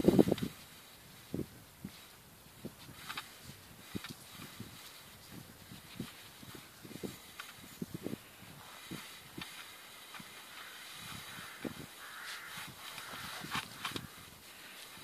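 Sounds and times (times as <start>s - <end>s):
rustle through grass: 0.0s - 15.0s
soft footsteps: 1.3s - 15.0s.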